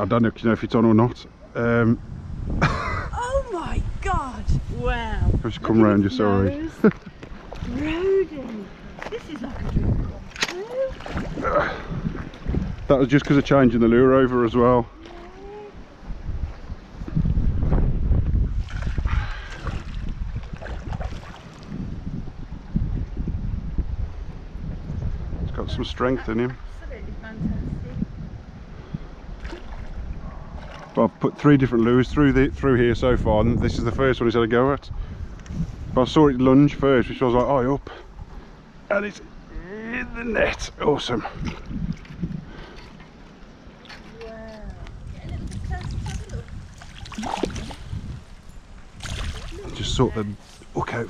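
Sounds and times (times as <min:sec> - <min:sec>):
wind buffeting microphone: 0:00.0 - 0:51.0
fish splashing in water: 0:09.5 - 0:12.5, 0:45.6 - 0:48.0, 0:48.9 - 0:49.8.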